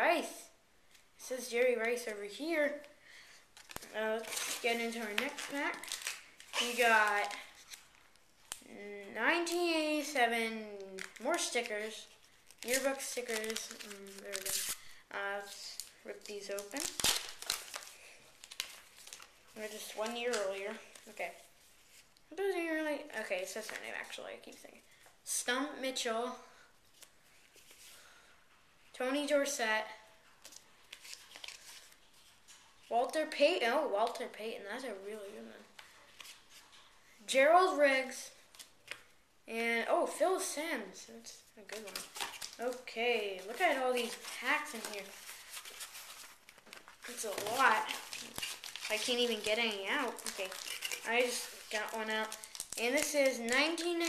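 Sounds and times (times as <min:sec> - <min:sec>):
wrapper crinkling: 0:03.6 - 0:08.7, 0:10.8 - 0:21.2, 0:30.4 - 0:32.7, 0:41.6 - 0:54.0
wrapper tearing: 0:03.6 - 0:08.7, 0:11.0 - 0:21.1, 0:30.4 - 0:32.1, 0:41.7 - 0:54.0.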